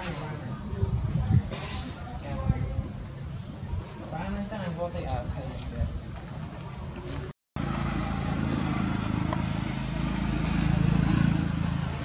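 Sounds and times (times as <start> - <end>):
vehicle engine drone: 7.6 - 12.0.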